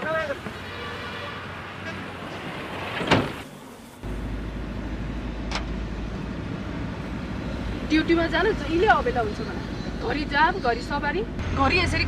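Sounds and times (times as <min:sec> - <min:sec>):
low engine rumble of traffic: 0:00.0 - 0:12.0
steady vehicle hum: 0:00.0 - 0:12.0.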